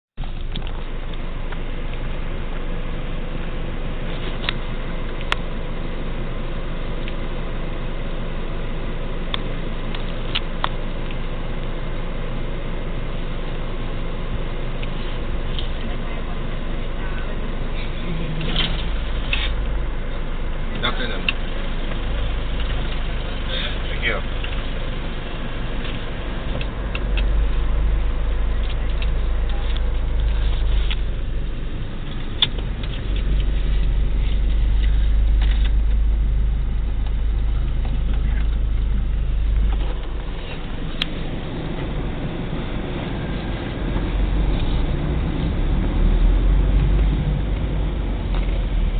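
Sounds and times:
car road and engine noise: 0:00.0 - 0:48.9.

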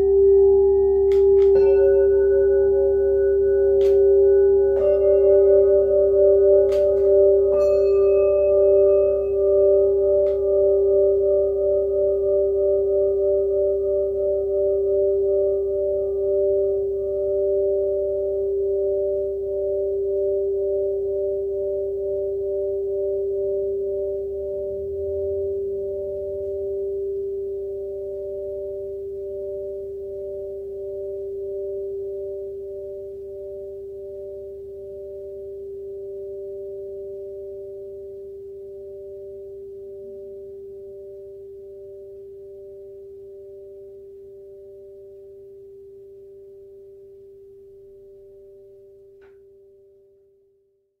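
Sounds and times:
gong ringing: 0:01.0 - 0:10.4.

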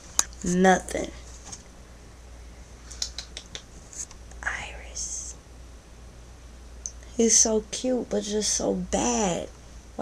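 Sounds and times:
sharp clicks: 0:03.0 - 0:04.4
person whispering: 0:04.4 - 0:05.4.

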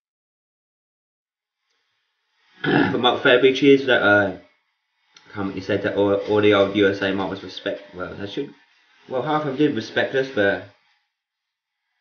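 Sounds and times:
man clearing his throat: 0:02.6 - 0:03.0
man speaking: 0:02.6 - 0:04.4, 0:05.3 - 0:10.7.

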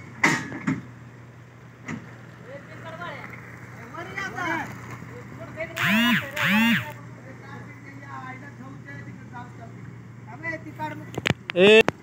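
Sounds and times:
loud horn hoots: 0:05.8 - 0:07.0.

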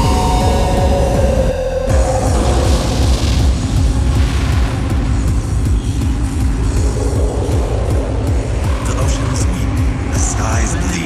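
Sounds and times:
fast techno kick-drum beat: 0:00.0 - 0:11.0.

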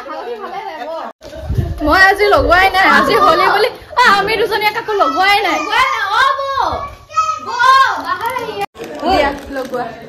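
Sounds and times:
lively voices talking: 0:00.0 - 0:10.0.

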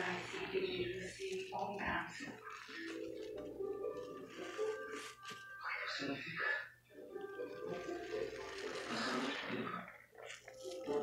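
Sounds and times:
sponge squelching: 0:00.0 - 0:05.6, 0:07.1 - 0:11.0
soapy water rushing out: 0:07.2 - 0:11.0.

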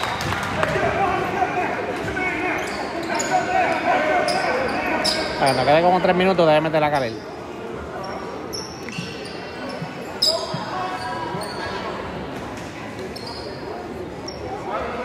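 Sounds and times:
spectators' voices echoing: 0:00.0 - 0:15.0
sneakers squeaking: 0:02.1 - 0:06.1, 0:06.9 - 0:14.8.

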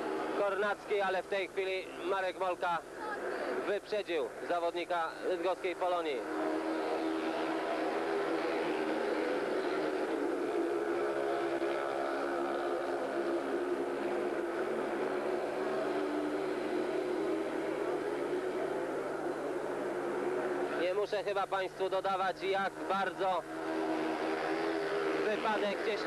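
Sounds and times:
motorcycles racing engine drone: 0:00.0 - 0:26.0.

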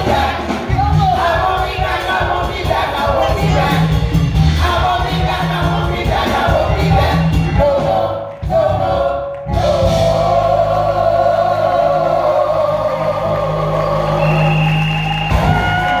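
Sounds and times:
women singing gospel in harmony: 0:00.0 - 0:14.5.

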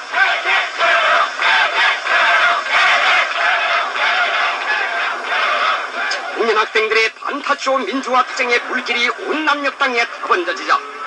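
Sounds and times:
many voices singing together: 0:00.0 - 0:06.4.

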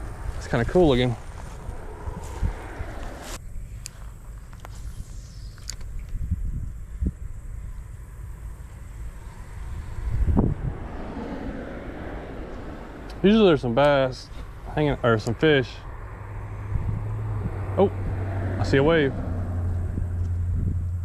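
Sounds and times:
wind rumbling on microphone: 0:00.0 - 0:13.8, 0:14.4 - 0:21.0.

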